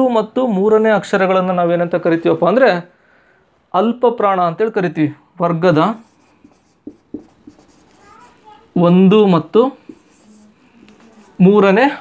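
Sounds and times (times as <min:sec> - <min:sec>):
marker scratching on whiteboard: 0:05.9 - 0:08.8, 0:09.4 - 0:12.0
man speaking: 0:08.8 - 0:10.0, 0:11.4 - 0:12.0.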